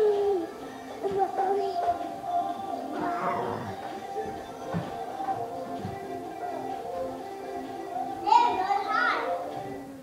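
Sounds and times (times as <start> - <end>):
pop music: 0.0 - 10.0.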